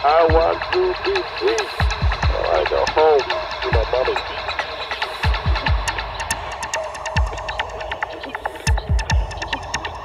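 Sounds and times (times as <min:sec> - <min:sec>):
ticking hi-hats: 0:00.0 - 0:10.0
deep kick drums: 0:00.2 - 0:04.6, 0:05.2 - 0:06.5, 0:07.1 - 0:08.0, 0:08.6 - 0:09.8
synth chirps: 0:00.5 - 0:10.0.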